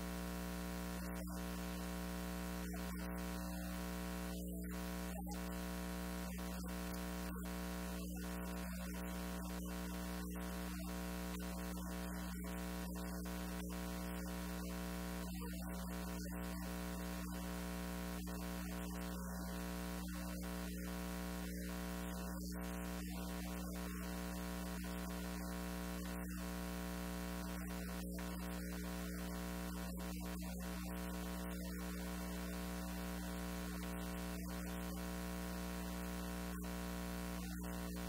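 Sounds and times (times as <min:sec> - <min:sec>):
electrical buzzing hum: 0:00.0 - 0:38.0.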